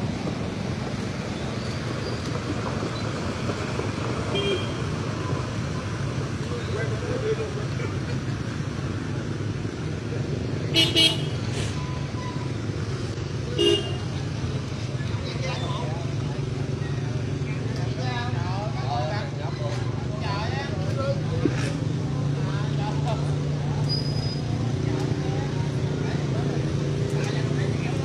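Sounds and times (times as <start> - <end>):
road traffic rumble: 0.0 - 28.0
vehicle horn beep: 4.4 - 4.8, 10.8 - 12.4
people talking: 5.3 - 8.4, 13.6 - 28.0.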